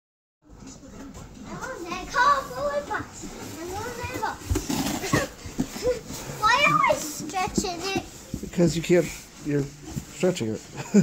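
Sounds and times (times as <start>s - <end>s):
children squealing and babbling: 5.0s - 7.3s.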